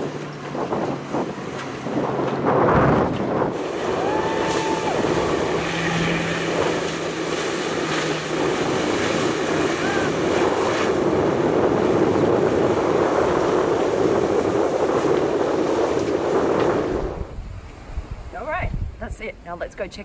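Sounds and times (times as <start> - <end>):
jet ski engine running: 0.0 - 18.7
wind buffeting microphone: 0.0 - 20.0
rushing water spray: 3.5 - 16.6.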